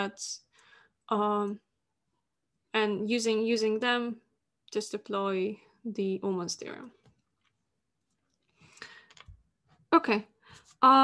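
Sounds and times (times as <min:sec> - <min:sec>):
woman speaking: 0:00.0 - 0:00.5, 0:01.1 - 0:01.7, 0:02.8 - 0:07.0, 0:09.9 - 0:11.0.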